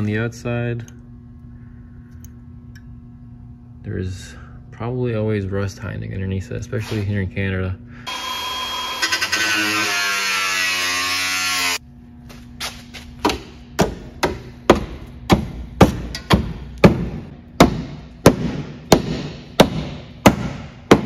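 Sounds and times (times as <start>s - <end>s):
power cutting tool running: 8.1s - 11.8s.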